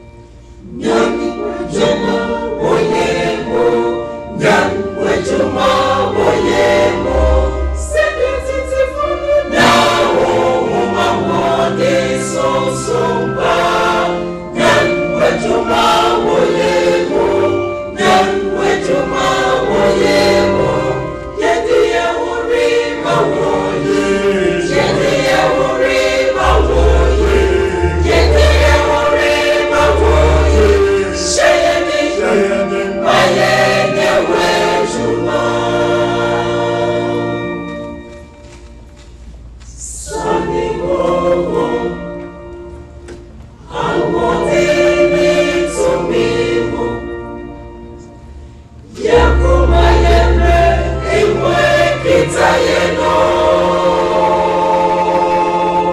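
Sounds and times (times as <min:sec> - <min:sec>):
choir singing gospel: 0:00.0 - 0:38.0, 0:39.7 - 0:55.9
deep bass notes: 0:26.4 - 0:31.2, 0:49.2 - 0:51.5.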